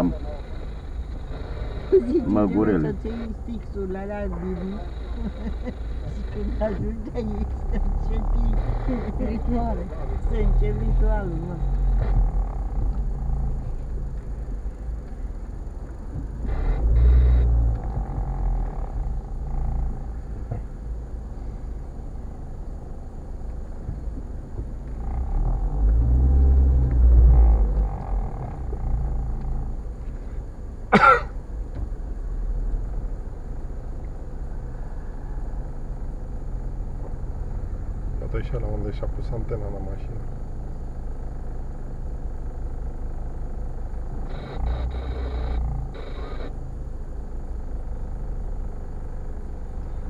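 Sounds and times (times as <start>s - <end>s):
car engine: 0.0s - 50.0s
road rumble: 0.0s - 50.0s.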